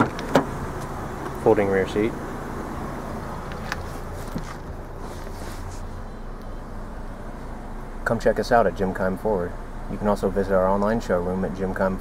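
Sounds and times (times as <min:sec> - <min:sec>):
car cabin rumble and hiss: 0:00.0 - 0:12.0.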